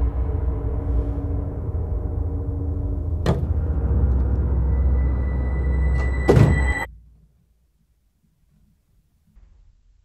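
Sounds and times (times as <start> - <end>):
eerie low drone: 0.0 - 7.0.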